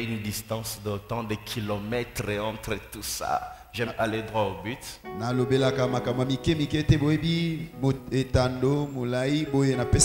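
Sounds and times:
man's voice in long tones: 0.0s - 10.0s
soft keyboard chords: 4.0s - 10.0s.

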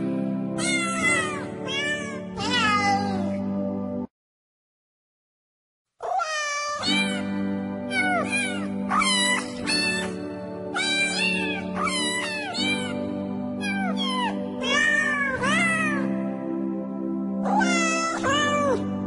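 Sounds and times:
background music with held notes: 0.0s - 4.1s, 6.8s - 19.0s
cats meowing: 0.6s - 3.4s, 6.0s - 7.3s, 7.9s - 10.2s, 10.8s - 13.0s, 13.6s - 16.1s, 17.4s - 18.9s.

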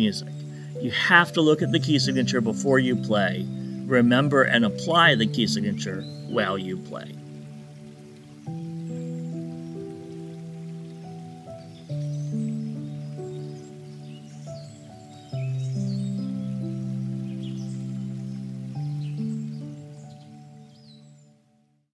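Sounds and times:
high chirping sounds: 0.0s - 21.1s
soft sustained chords: 0.0s - 21.8s.

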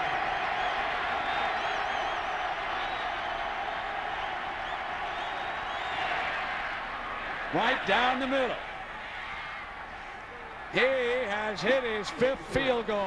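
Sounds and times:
crowd whooping: 0.0s - 8.0s
stadium crowd din: 0.0s - 13.0s
faint high whistles: 0.6s - 3.4s, 4.6s - 6.1s.

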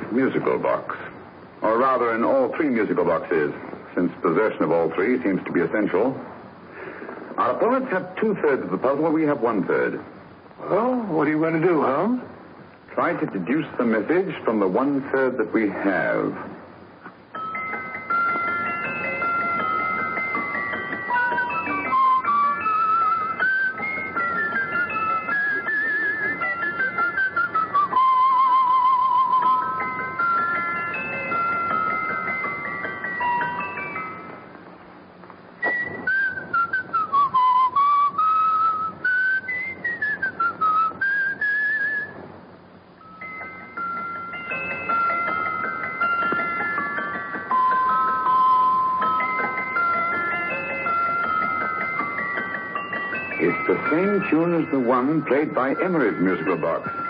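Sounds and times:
music box melody: 17.3s - 40.9s, 43.0s - 57.0s.

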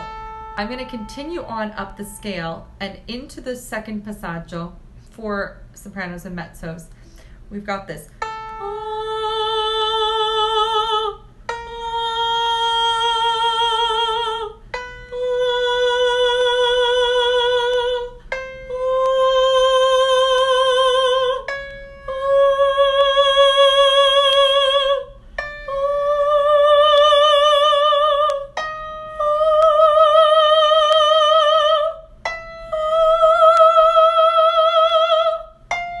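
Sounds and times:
woman singing vocal exercise: 0.6s - 21.5s, 22.1s - 28.5s.

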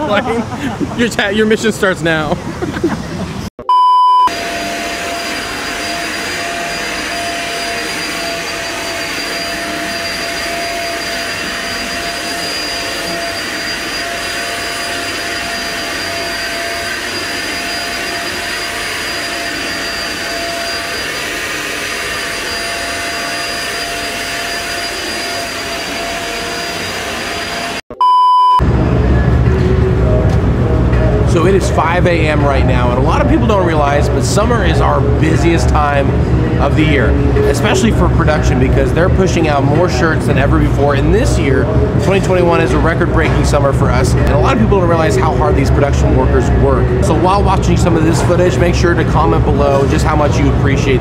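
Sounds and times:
loud steady beep tone: 3.6s - 28.6s
vacuum cleaner whine: 4.3s - 27.8s.

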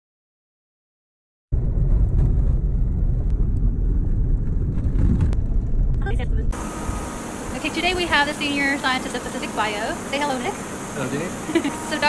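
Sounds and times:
car rumbling on dirt road: 1.5s - 8.3s.

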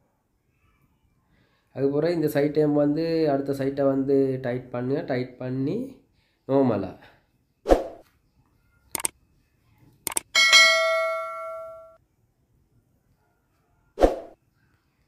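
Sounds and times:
bell ding: 10.4s - 12.0s.

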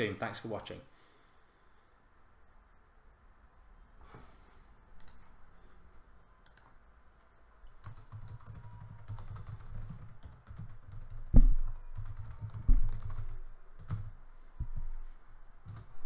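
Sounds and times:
computer keyboard typing: 7.7s - 14.2s, 15.7s - 16.0s
loud thumps: 11.3s - 11.6s.

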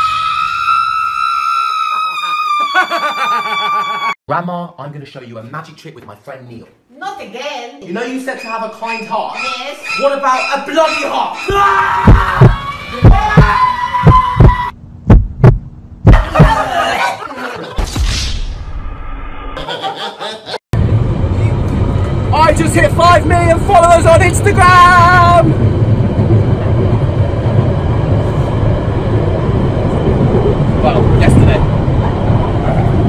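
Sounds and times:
heartbeat double thumps: 12.0s - 16.6s
subway train wheels rumbling: 20.8s - 33.0s.

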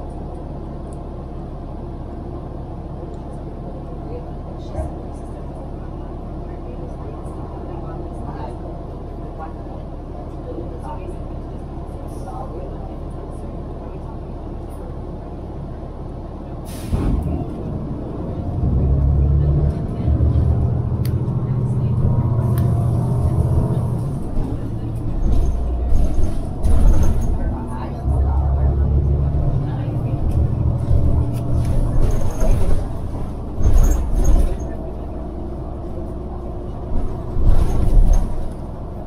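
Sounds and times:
bus engine rumble: 0.0s - 39.0s
air brakes hiss: 16.6s - 17.1s.

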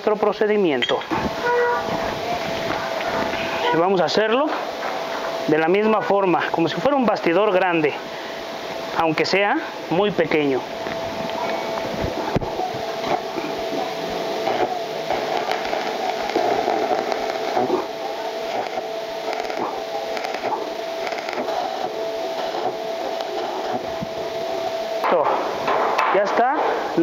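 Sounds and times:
steady hum: 0.0s - 27.0s
welding arc crackling hiss: 0.0s - 27.0s.

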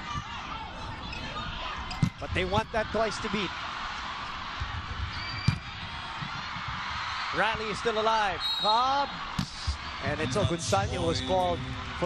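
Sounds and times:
arena crowd noise: 0.0s - 12.0s
volleyball being spiked: 5.4s - 6.4s.

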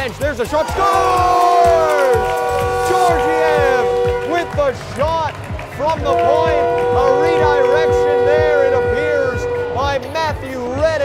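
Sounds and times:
music with long held notes: 0.7s - 11.0s.

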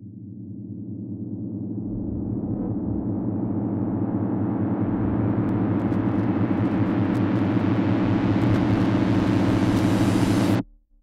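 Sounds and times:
low rumbling drone: 0.0s - 7.2s.

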